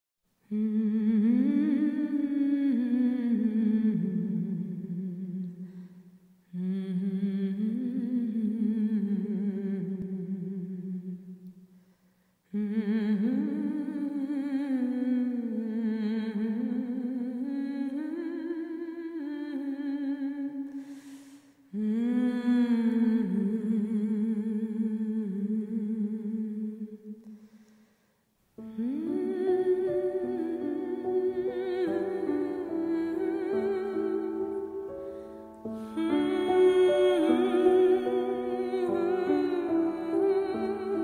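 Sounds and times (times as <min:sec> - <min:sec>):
person humming a slow melody: 0:00.4 - 0:05.8, 0:06.5 - 0:11.5, 0:12.5 - 0:27.3, 0:28.6 - 0:41.0
breath drawn: 0:20.7 - 0:21.6.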